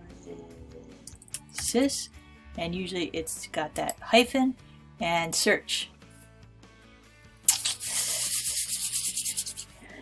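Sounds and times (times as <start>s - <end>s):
faint background music: 0.0s - 10.0s
hands rubbing together: 7.5s - 9.8s.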